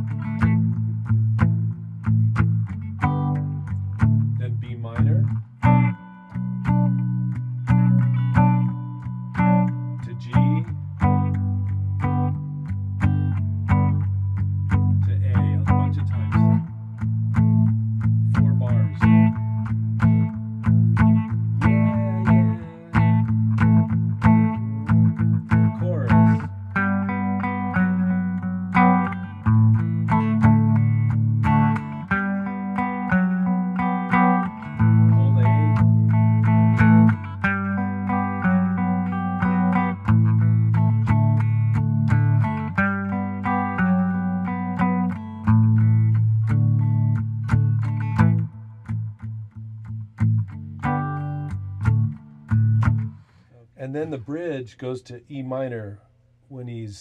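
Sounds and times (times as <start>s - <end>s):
tenor guitar strumming chords: 0.0s - 54.6s.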